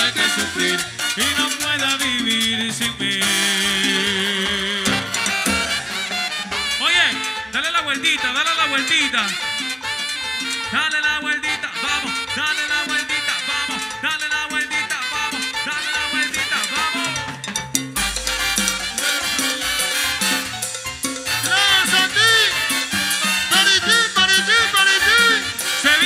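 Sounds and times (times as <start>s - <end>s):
latin dance orchestra playing: 0.0s - 26.0s
deep bass note: 18.0s - 20.3s.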